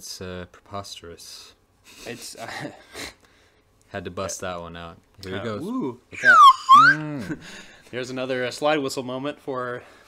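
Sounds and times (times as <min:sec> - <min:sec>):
slide whistle gliding: 0:06.2 - 0:07.0.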